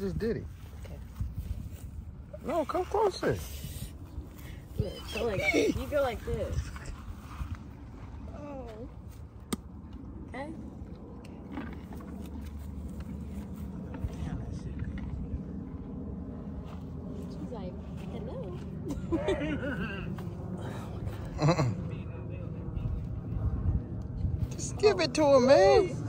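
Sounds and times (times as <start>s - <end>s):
low rumble: 0.0s - 26.0s.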